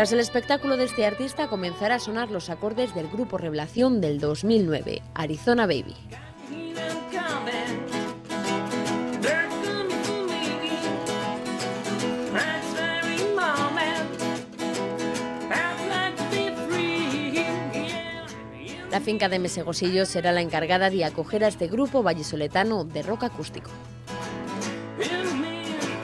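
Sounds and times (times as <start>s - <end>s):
acoustic guitars strumming: 0.0s - 26.0s
man singing: 6.1s - 8.1s, 9.1s - 11.5s, 12.2s - 14.4s, 15.4s - 19.3s, 24.9s - 26.0s.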